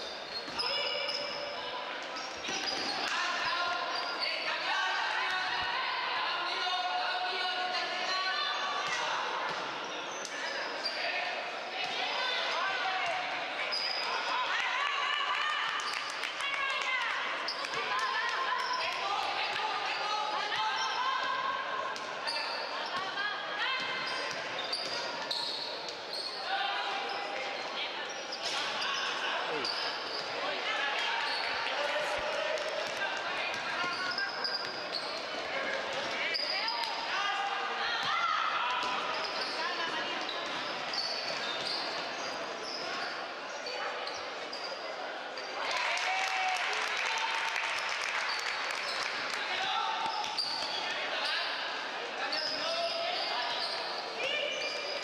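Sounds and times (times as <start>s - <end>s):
sneaker squeaks: 0.0s - 4.6s, 8.3s - 11.2s, 13.2s - 14.3s, 17.4s - 30.4s, 31.0s - 31.7s, 33.5s - 37.0s, 37.9s - 45.6s, 50.0s - 55.0s.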